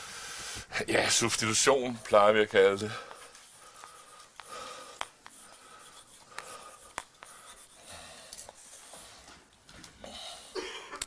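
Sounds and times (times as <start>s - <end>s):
chalk scratching on blackboard: 2.5s - 9.3s
chalk tapping on board: 3.1s - 9.0s
chalk squeak: 5.2s - 7.9s.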